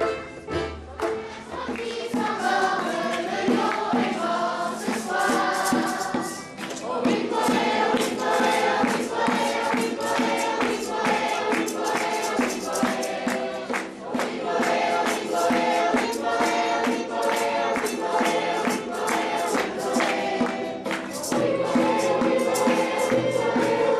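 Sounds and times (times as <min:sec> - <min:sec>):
acoustic guitar strumming: 0:00.0 - 0:23.9
children's choir singing: 0:00.0 - 0:23.9.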